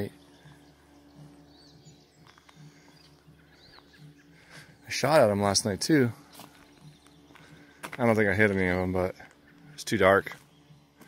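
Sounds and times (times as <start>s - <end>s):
faint high bird chirps: 0.0s - 11.0s
low steady outdoor hum: 0.0s - 11.0s.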